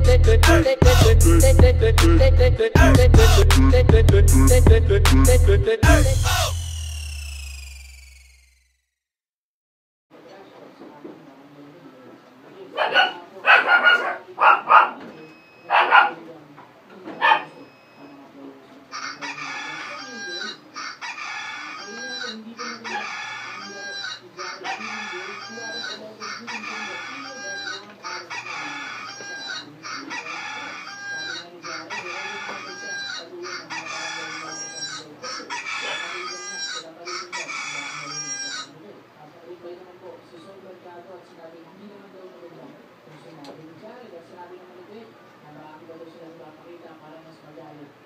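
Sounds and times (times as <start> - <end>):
phone alarm tone: 6.5 - 8.7, 15.1 - 15.9, 17.4 - 18.3, 20.0 - 20.6, 29.1 - 29.6.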